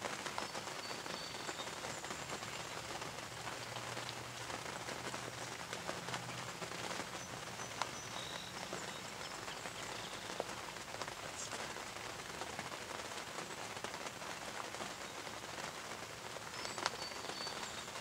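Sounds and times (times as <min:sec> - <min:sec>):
rain patter: 0:00.0 - 0:18.0.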